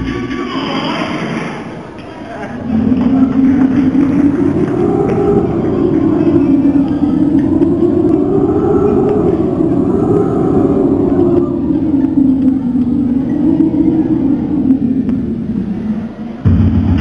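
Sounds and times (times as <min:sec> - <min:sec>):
low droning rumble: 0:00.0 - 0:17.0.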